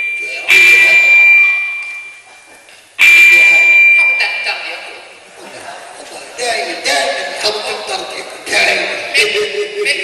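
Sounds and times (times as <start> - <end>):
high feedback ring: 0.0 - 4.9.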